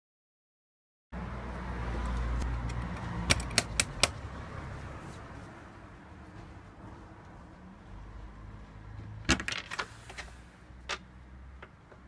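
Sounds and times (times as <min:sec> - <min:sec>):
sharp clicks: 0:02.1 - 0:04.2.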